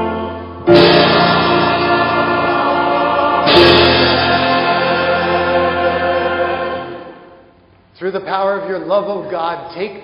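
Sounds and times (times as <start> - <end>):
church choir singing: 0.0 - 7.5
instrumental accompaniment: 0.0 - 7.6.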